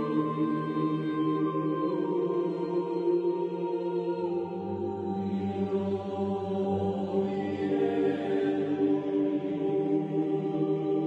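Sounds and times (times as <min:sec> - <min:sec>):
slow choral singing: 0:00.0 - 0:11.0.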